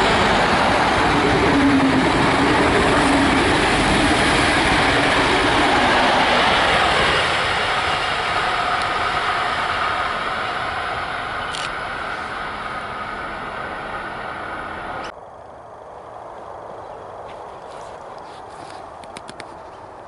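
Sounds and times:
passenger train rolling past: 0.0s - 17.4s.

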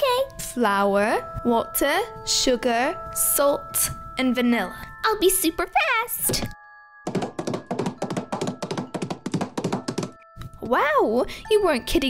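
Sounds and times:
rapid light taps and thunks: 7.1s - 10.2s.

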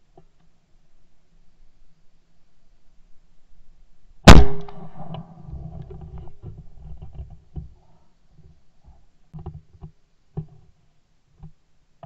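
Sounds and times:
loud shotgun shot: 4.3s - 5.1s.

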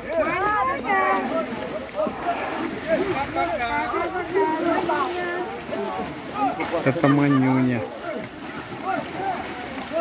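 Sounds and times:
elephant splashing water: 0.0s - 10.0s
people chattering: 0.0s - 10.0s.

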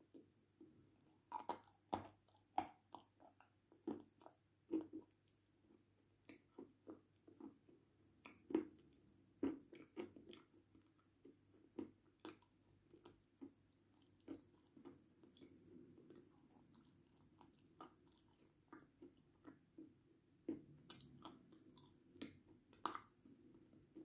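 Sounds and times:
chewing dry clay crunches: 0.1s - 23.4s.

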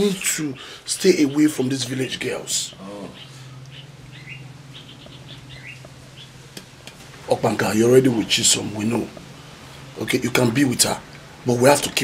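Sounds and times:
steady low hum: 0.0s - 12.0s
small birds chirping: 0.1s - 12.0s.

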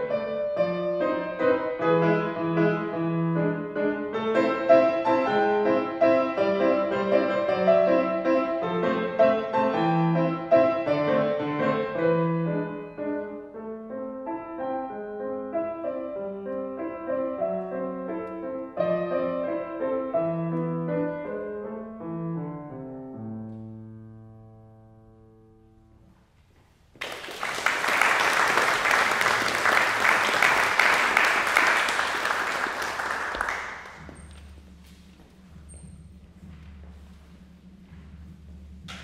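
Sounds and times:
solo grand piano: 0.0s - 39.0s
audience applauding: 27.0s - 34.2s.

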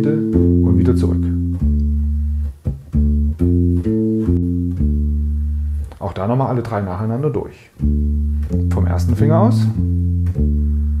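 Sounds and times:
bass guitar arpeggio: 0.0s - 7.2s, 7.8s - 11.0s.

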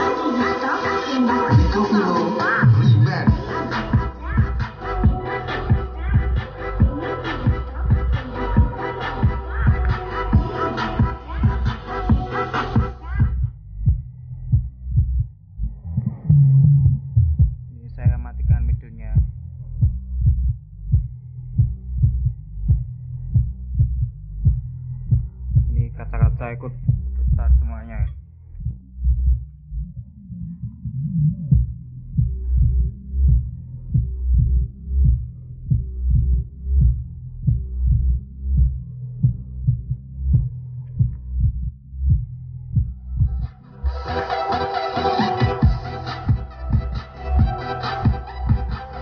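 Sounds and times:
chopped vocal snippets: 0.0s - 13.4s
dance music: 0.0s - 13.4s, 43.2s - 49.0s
heavy bass beat from subwoofer: 0.0s - 49.0s.

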